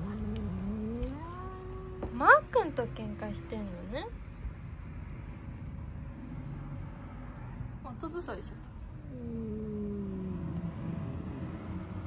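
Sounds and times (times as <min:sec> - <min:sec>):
cat yowling: 0:00.0 - 0:02.2.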